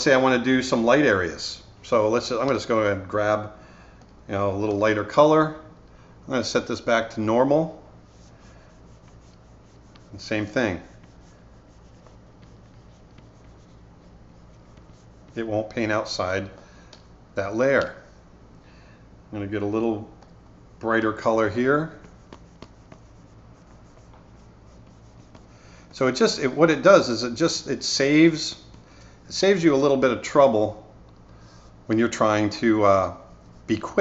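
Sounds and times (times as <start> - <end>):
low room hum: 0.0 - 34.0
stylus scratching on screen: 8.0 - 15.6, 21.5 - 27.1, 33.1 - 34.0.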